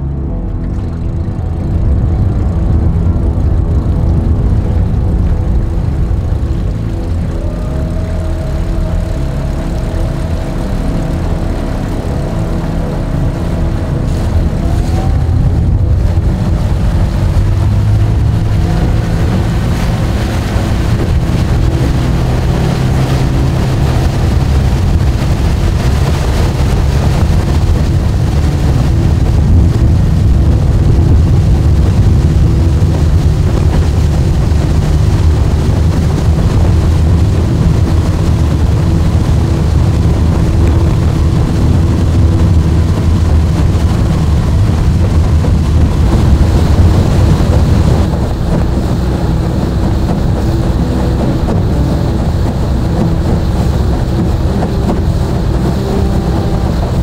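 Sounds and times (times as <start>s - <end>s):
outboard motor running: 0.0s - 57.0s.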